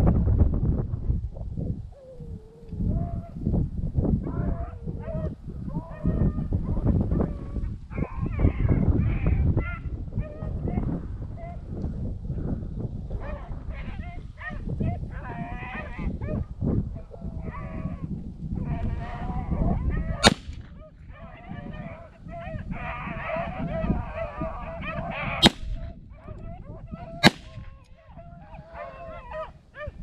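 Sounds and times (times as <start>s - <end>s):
gunshot crack: 20.2s - 20.7s, 25.4s - 25.8s, 27.2s - 27.7s
hounds baying: 20.9s - 30.0s.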